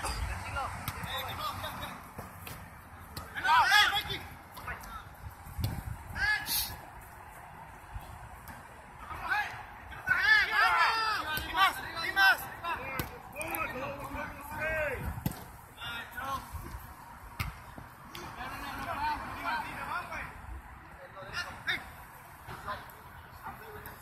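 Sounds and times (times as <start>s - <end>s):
players shouting: 3.1s - 5.1s, 6.1s - 15.1s.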